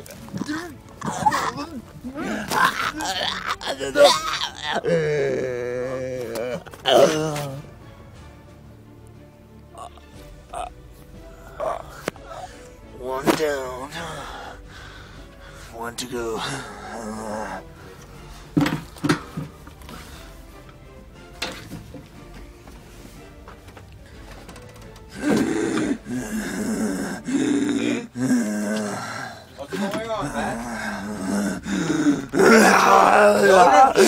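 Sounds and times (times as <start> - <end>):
man groaning: 0.3 - 7.6, 25.1 - 34.0
man yelling: 32.4 - 34.0.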